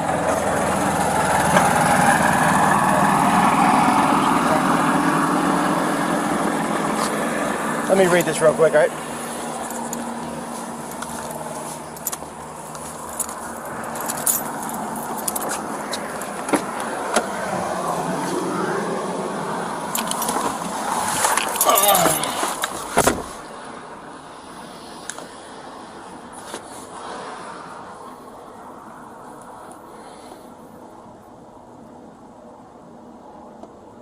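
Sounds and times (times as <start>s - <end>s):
traffic noise: 0.0s - 34.0s
car door slamming: 22.0s - 23.4s.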